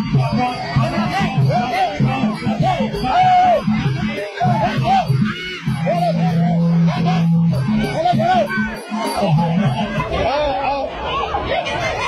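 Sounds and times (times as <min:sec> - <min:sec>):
faint crowd babble: 0:00.0 - 0:12.0
people chattering and calling out: 0:00.0 - 0:12.0.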